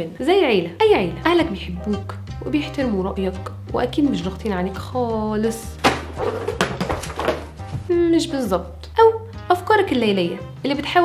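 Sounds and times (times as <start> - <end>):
background music: 0.0 - 11.0
book knocking: 5.8 - 7.9.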